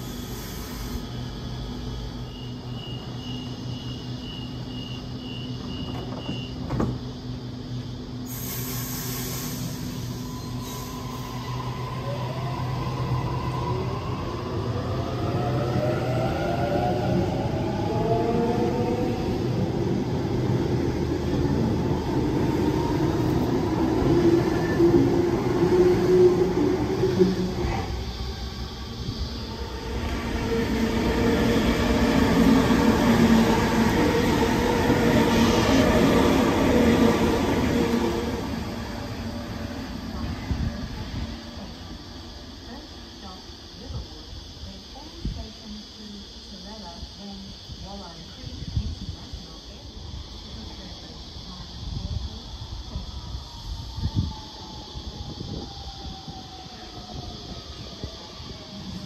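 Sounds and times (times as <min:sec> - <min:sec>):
electric train motor whine: 0:16.7 - 0:41.5.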